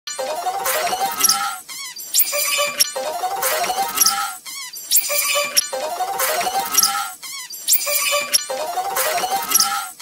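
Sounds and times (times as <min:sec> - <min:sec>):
sped-up cartoon soundtrack: 0:00.1 - 0:10.0.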